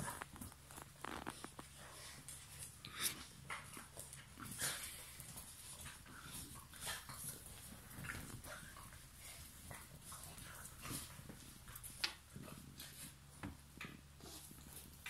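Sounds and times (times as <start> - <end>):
puppies scuffling on tiles: 0.0 - 15.0
puppy noises: 0.0 - 15.0.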